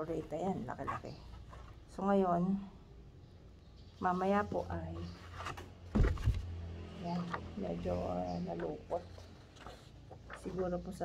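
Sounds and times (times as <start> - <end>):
dull thump: 5.9 - 6.4
paper sheets rustling: 9.1 - 11.0.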